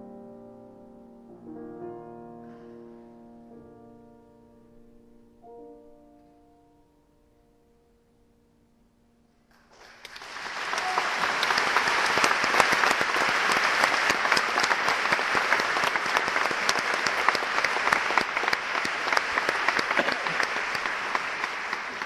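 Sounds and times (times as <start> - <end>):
audience applauding: 9.5 - 22.0.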